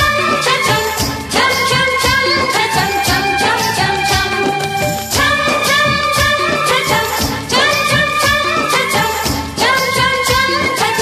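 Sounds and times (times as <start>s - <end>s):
song with steady beat: 0.0s - 11.0s.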